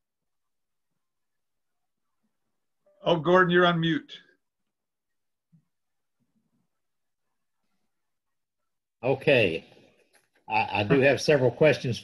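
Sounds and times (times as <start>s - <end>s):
man's voice: 10.5s - 12.0s.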